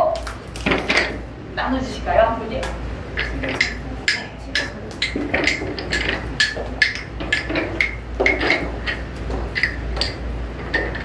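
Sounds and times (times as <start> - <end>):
wooden rhythm sticks clicking: 2.6 - 11.0.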